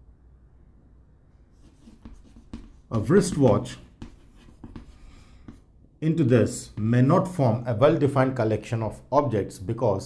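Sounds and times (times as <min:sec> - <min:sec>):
chalk scratching on chalkboard: 0:01.5 - 0:05.7
chalk tapping on board: 0:01.6 - 0:05.7.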